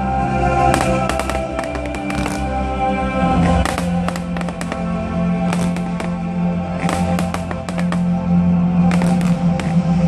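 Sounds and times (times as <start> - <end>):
music with long held notes: 0.0 - 10.0
fireworks popping and crackling: 0.6 - 8.2, 8.8 - 10.0.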